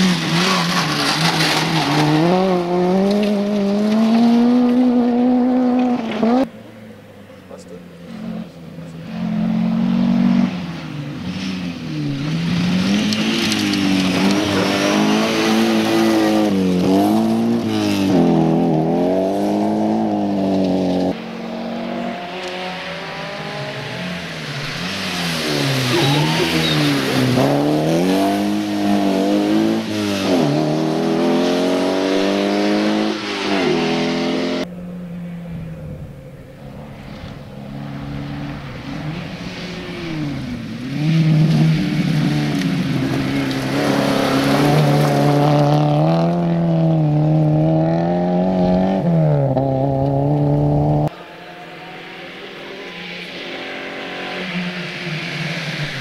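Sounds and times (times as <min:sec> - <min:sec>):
rally car engine revving hard: 0:00.0 - 0:06.5, 0:08.2 - 0:34.7, 0:37.4 - 0:51.2
distant car engine: 0:00.0 - 0:56.0.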